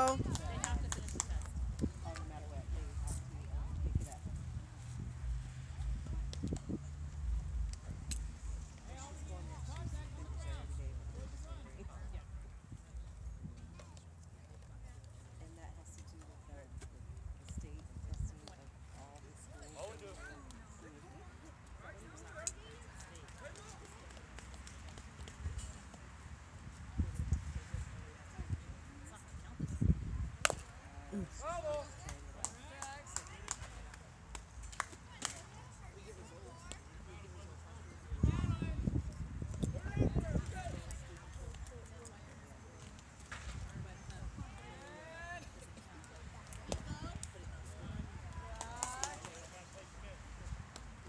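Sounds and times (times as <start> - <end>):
people talking and calling out: 0.0 - 51.0.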